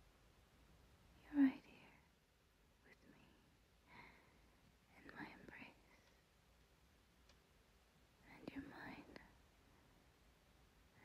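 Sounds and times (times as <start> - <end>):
woman whispering: 1.2 - 2.1, 2.8 - 4.1, 4.9 - 6.1, 8.2 - 9.4
faint clicks: 5.5 - 6.3, 7.2 - 7.5.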